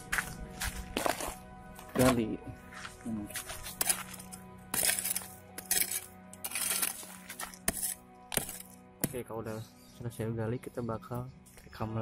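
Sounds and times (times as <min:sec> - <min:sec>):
background music: 0:00.0 - 0:12.0
metal tool digging stony soil: 0:00.9 - 0:02.3, 0:03.3 - 0:09.2.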